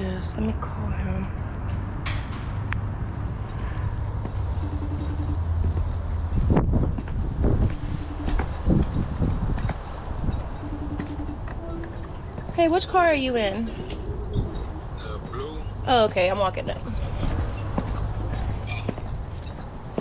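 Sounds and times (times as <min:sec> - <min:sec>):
wind rumble on microphone: 0:00.6 - 0:20.0
phone ringback tone: 0:04.6 - 0:05.5, 0:07.7 - 0:08.7, 0:10.6 - 0:12.3.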